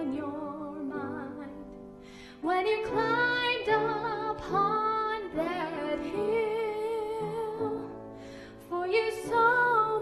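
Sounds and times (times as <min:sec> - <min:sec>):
woman singing slow song: 0:00.0 - 0:01.8, 0:02.4 - 0:08.0, 0:08.6 - 0:10.0.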